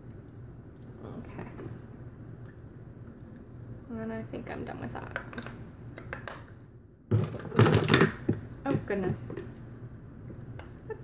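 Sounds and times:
makeup products rummaged through: 7.1s - 9.4s.

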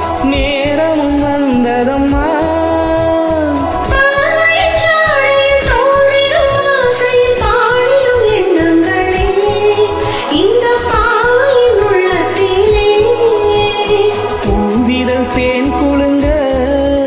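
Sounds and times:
karaoke backing track: 0.0s - 17.0s
woman singing: 0.0s - 17.0s.

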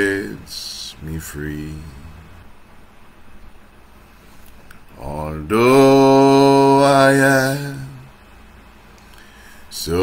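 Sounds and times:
man singing a hymn unaccompanied: 0.0s - 2.5s, 4.9s - 8.2s, 9.7s - 10.0s.

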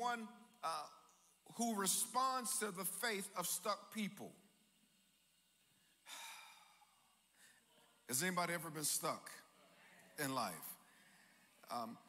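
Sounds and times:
man breathing close to microphone: 6.0s - 7.6s.

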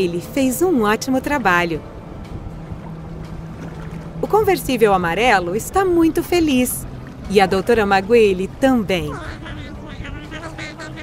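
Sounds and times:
engine hum: 0.0s - 11.0s
water rushing and splashing: 1.0s - 11.0s.

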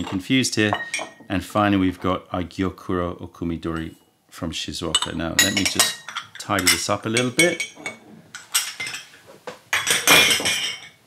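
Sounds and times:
glass and metal teaware clinking: 0.0s - 1.3s, 5.0s - 9.1s, 9.7s - 11.0s.

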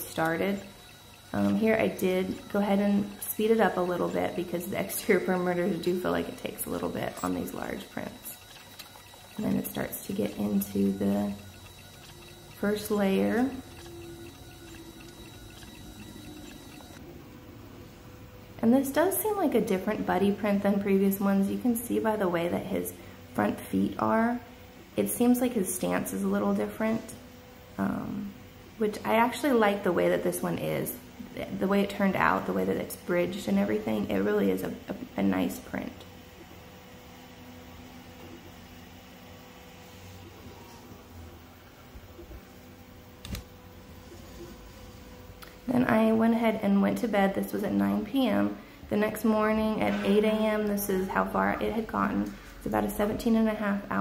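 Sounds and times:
printer stepper motor tones: 0.0s - 17.0s
steady low hum: 0.0s - 54.0s.

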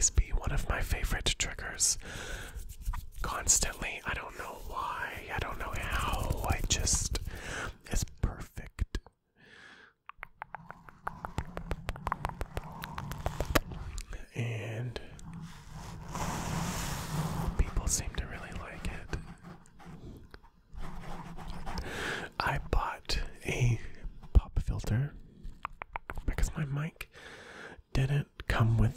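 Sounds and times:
soft whispering: 0.0s - 9.2s, 10.6s - 27.1s, 27.9s - 28.9s
hand rubbing foam microphone: 1.8s - 7.5s, 10.2s - 22.7s
mouth clicks: 10.0s - 14.2s, 25.5s - 26.4s.

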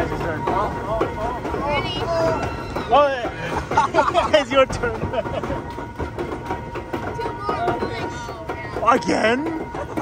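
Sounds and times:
conveyor lift rumble: 0.0s - 10.0s.

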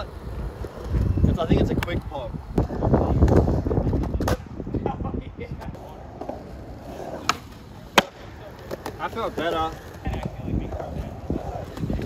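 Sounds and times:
skateboard clack: 0.0s - 12.0s
skateboard wheels rolling: 0.0s - 12.0s.

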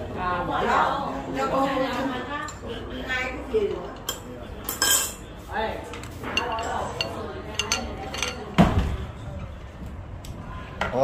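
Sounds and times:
ceramic bowls and spoons clinking: 3.7s - 8.6s.

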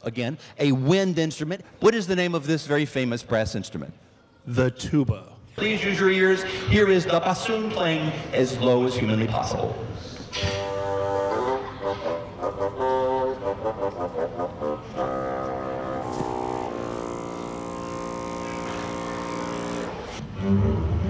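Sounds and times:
solo bassoon playing: 10.4s - 21.0s.

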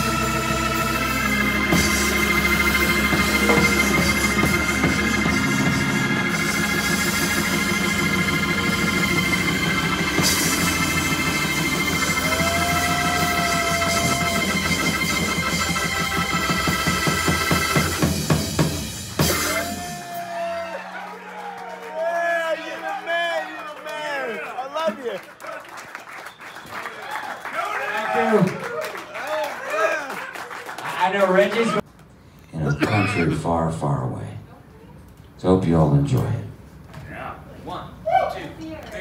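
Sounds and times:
organ holding a sustained chord: 0.0s - 23.6s
audience whistling and cheering: 1.7s - 18.3s, 19.1s - 24.7s, 25.3s - 30.8s
fast drum-kit roll: 1.7s - 20.4s.

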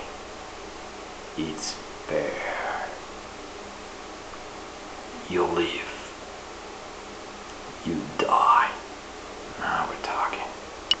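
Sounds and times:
man whispering: 1.4s - 3.0s, 5.2s - 6.2s, 7.8s - 8.9s, 9.5s - 10.6s.

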